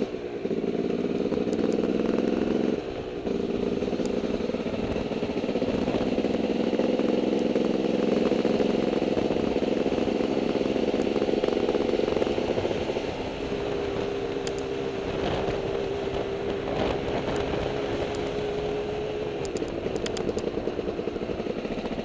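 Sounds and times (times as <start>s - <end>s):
dirt bike engine running: 0.0s - 22.0s.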